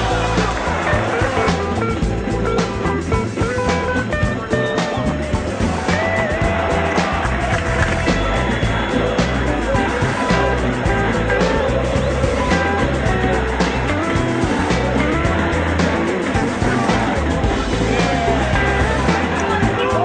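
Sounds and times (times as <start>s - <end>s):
rock music with steady beat: 0.0s - 20.0s.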